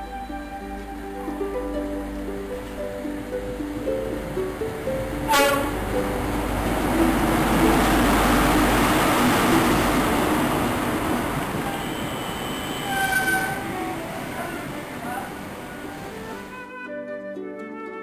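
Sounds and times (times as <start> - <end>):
diesel train rumbling past: 0.0 - 16.6
train horn blast: 5.2 - 6.4, 7.1 - 16.6
brief high squeal: 11.7 - 15.4.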